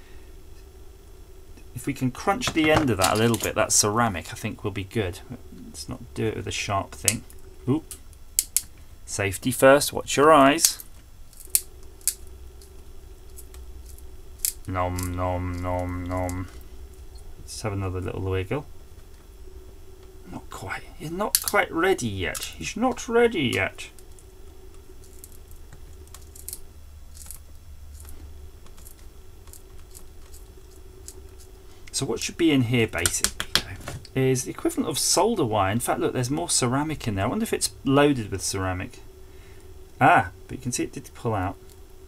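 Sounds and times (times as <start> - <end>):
faint steady hum: 0.0 - 42.0
pliers crunching ceramic fuse: 8.4 - 8.7, 10.6 - 12.3, 13.3 - 16.4, 21.0 - 21.7, 22.3 - 24.2, 26.1 - 31.5
pliers crushing ceramic: 21.3 - 21.6.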